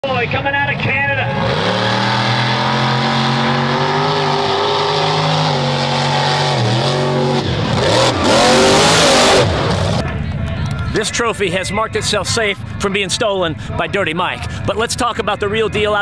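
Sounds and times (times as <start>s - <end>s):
truck engine revving: 0.9s - 10.3s.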